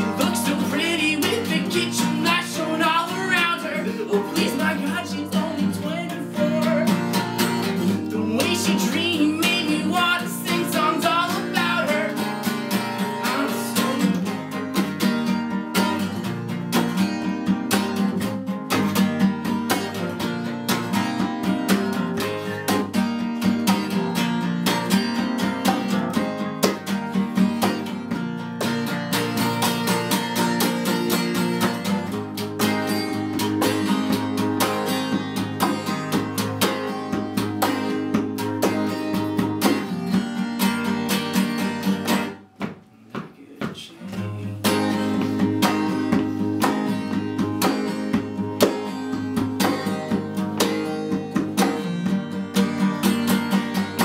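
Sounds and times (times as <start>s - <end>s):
acoustic guitar strummed: 0.0s - 54.0s.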